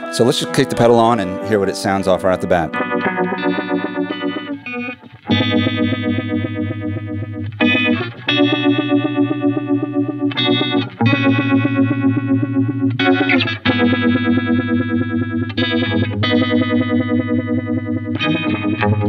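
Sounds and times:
electric guitar chords with vibrato: 0:00.0 - 0:19.0.

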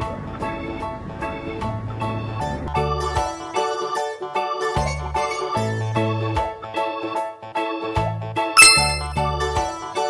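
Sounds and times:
upbeat keyboard music with beat: 0:08.6 - 0:09.2
bright ringing ding: 0:08.6 - 0:09.3.

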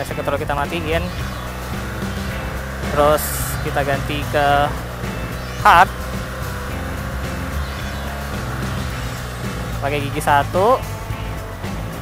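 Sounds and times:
background music: 0:00.0 - 0:12.0
motorcycle engine running: 0:00.0 - 0:12.0.

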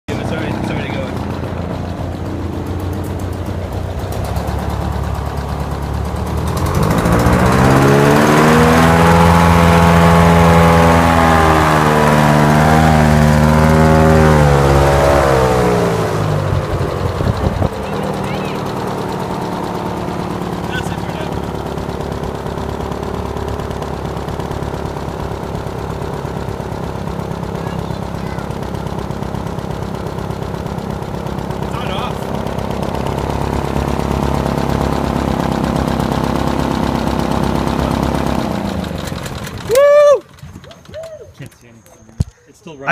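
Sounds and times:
hovercraft engine and fan revving: 0:00.0 - 0:42.9.

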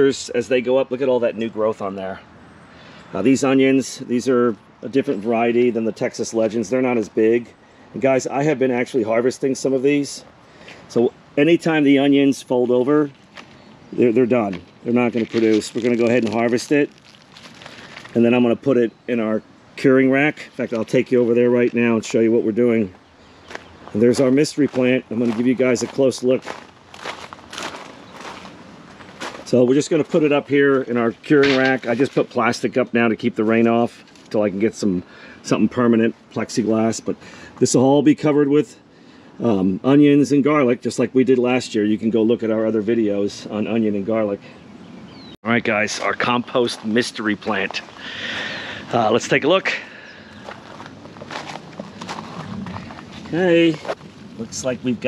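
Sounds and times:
footsteps crunching on gravel: 0:12.6 - 0:18.5, 0:20.2 - 0:32.6, 0:45.7 - 0:55.0.

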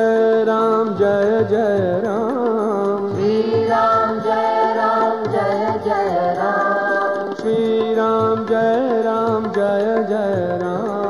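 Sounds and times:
rhythmic percussion beat: 0:00.0 - 0:11.0.

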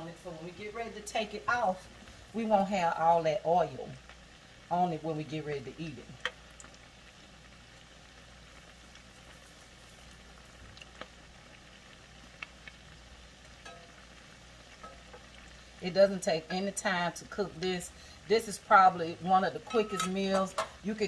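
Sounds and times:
food sizzling in oil: 0:00.0 - 0:21.0.

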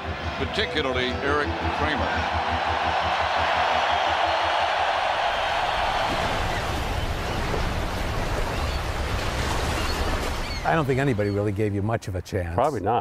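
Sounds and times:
stadium crowd roaring: 0:00.0 - 0:06.6
ocean surf: 0:03.5 - 0:11.4.

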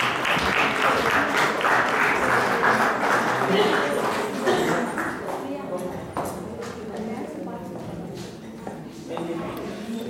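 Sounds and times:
murmur of audience voices: 0:00.0 - 0:10.0.

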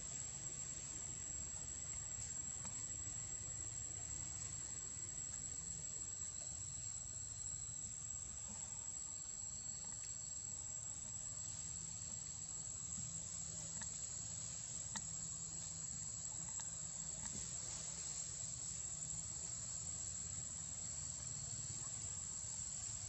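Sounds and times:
insects trilling: 0:00.0 - 0:23.0.

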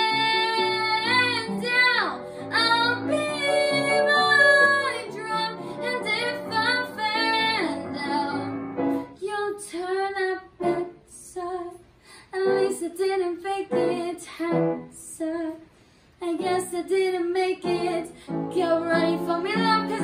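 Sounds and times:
girl singing: 0:00.0 - 0:20.0.

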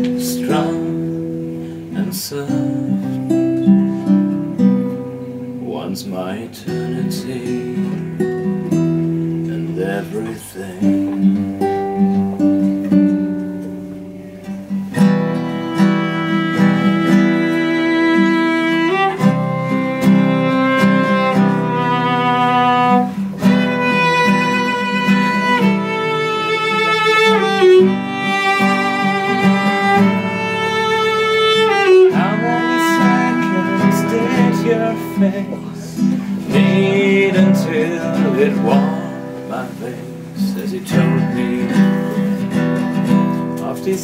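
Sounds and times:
person singing: 0:00.0 - 0:04.1, 0:05.6 - 0:08.2, 0:09.4 - 0:11.4, 0:15.5 - 0:42.5
classical guitar chords: 0:00.0 - 0:44.0
held cello note: 0:15.2 - 0:43.8.

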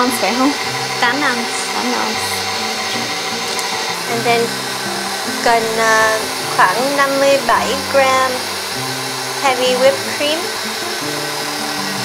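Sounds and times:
stand mixer running: 0:00.0 - 0:12.0.

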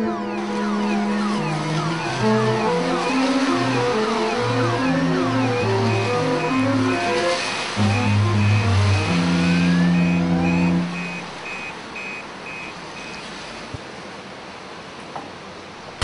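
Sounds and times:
cars driving past: 0:00.0 - 0:16.0
music with deep bass line: 0:07.8 - 0:11.2
short high beeps: 0:07.8 - 0:13.2.

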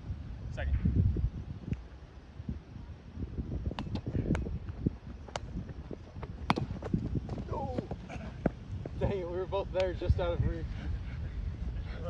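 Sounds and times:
wind rumble on microphone: 0:00.0 - 0:12.0
ball tapping off net: 0:06.4 - 0:06.9.

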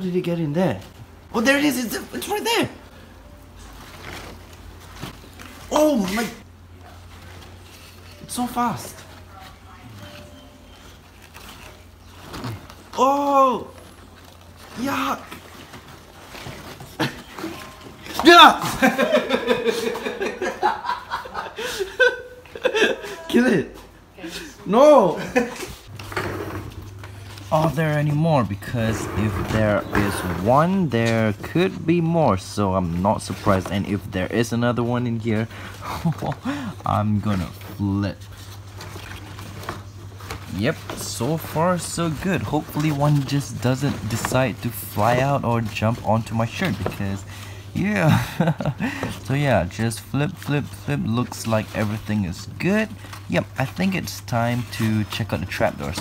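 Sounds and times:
cardboard rustling and scraping: 0:02.9 - 0:21.0, 0:25.3 - 0:36.4, 0:37.0 - 0:56.0.

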